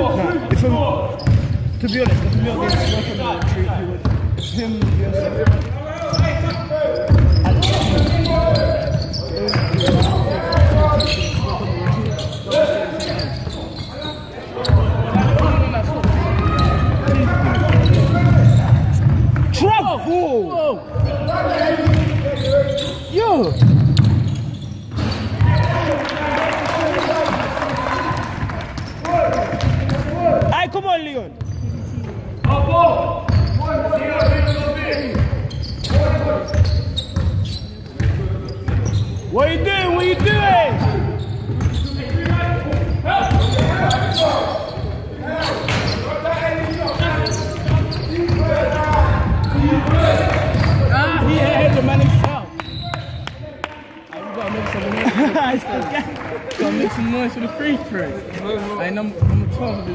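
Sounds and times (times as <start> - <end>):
basketball bouncing on wooden court: 0.5 - 2.8, 3.4 - 12.3, 14.6 - 19.6, 21.8 - 22.2, 23.5 - 25.7, 28.8 - 30.5, 34.2 - 39.0, 40.2 - 44.0, 46.6 - 52.3, 59.2 - 59.6
trainers squeaking on floor: 1.1 - 3.4, 4.3 - 5.4, 6.0 - 15.0, 16.4 - 19.0, 21.0 - 25.8, 31.4 - 39.4, 40.7 - 51.8, 52.5 - 53.3, 59.5 - 59.9.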